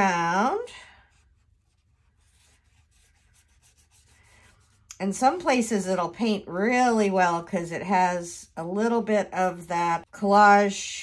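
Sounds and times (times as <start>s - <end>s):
paintbrush brushing on paper: 0.2s - 5.4s.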